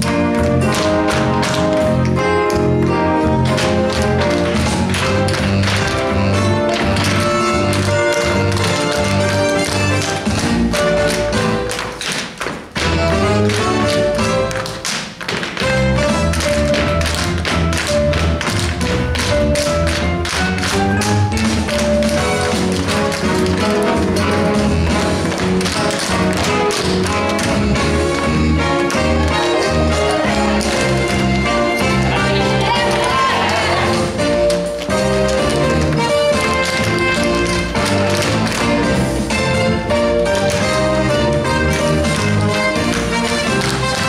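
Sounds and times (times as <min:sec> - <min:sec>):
tap shoes striking stage floor: 0:00.0 - 0:44.0
upbeat show tune music: 0:00.0 - 0:44.0.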